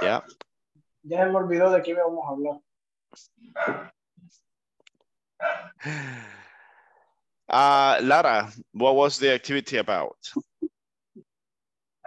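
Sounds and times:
person sighing: 0:05.8 - 0:06.6.

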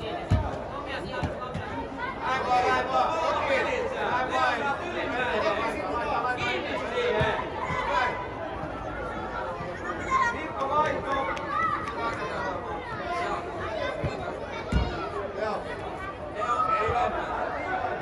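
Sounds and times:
children and adults chattering: 0:00.0 - 0:18.0.

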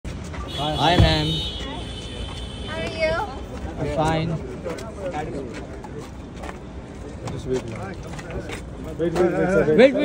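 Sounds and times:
urban street noise: 0:00.0 - 0:10.0.

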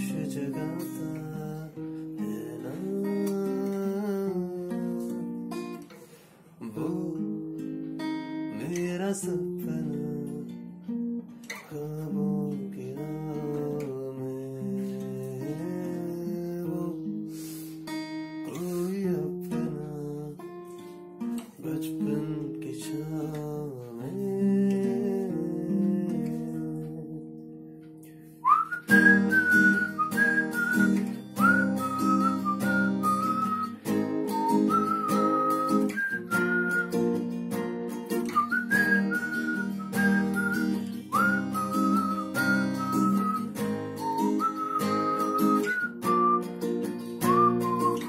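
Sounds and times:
person whistling a melody: 0:00.0 - 0:06.0, 0:11.4 - 0:21.1, 0:22.8 - 0:48.0
acoustic guitar strumming: 0:00.0 - 0:48.0.

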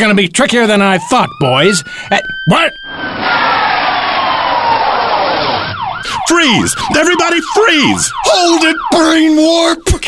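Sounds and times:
police siren wail: 0:00.8 - 0:09.8.

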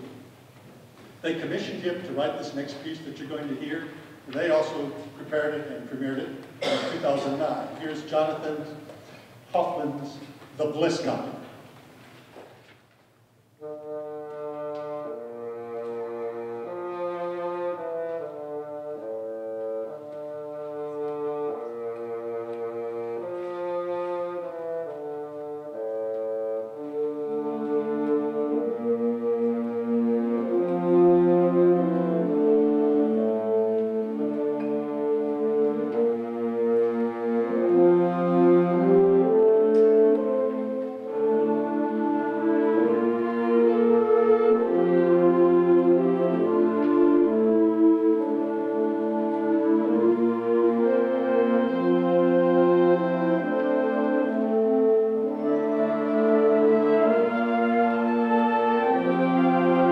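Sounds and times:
wind band playing chords: 0:00.0 - 0:12.0, 0:13.2 - 0:59.9.

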